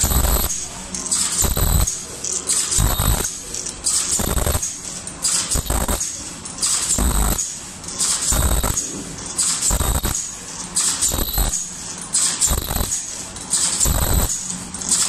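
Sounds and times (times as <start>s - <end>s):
machine mechanical bursts with hiss: 0.0s - 15.0s.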